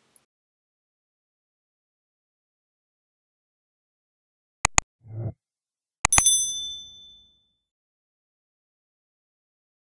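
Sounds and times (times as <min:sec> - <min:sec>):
mouse click sound effects: 0:04.7 - 0:05.3
high bell ding: 0:06.1 - 0:07.5.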